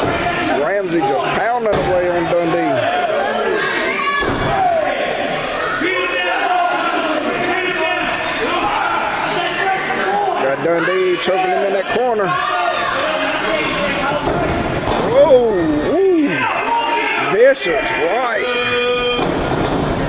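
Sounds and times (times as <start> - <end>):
crowd yelling in echoing hall: 0.0 - 20.0.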